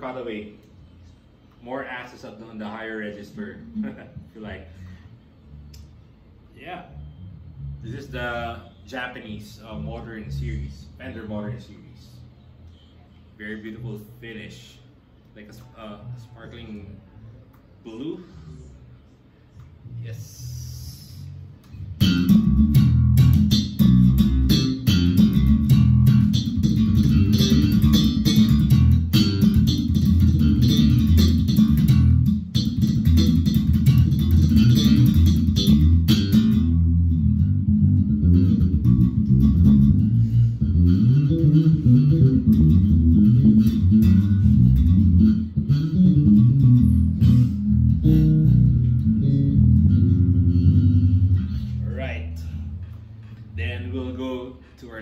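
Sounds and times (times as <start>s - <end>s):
electric bass line: 6.8s - 8.7s, 19.8s - 54.3s.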